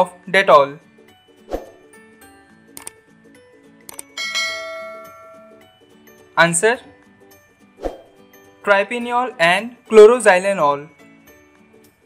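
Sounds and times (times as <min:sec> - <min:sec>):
soft background music: 0:00.0 - 0:12.0
bell-like notification chime: 0:04.2 - 0:05.8.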